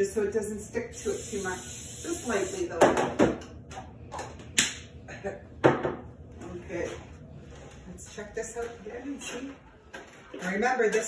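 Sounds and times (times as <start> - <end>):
object knocking on countertop: 5.6 - 6.0.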